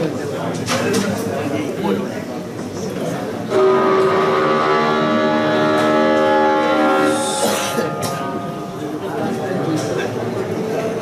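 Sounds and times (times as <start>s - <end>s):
loud steady horn: 3.5s - 9.5s.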